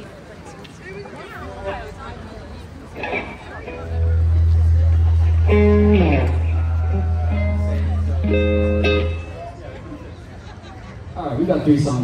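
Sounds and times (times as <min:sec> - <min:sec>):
electric bass note: 0:03.0 - 0:09.3
electric guitar notes: 0:03.0 - 0:09.5.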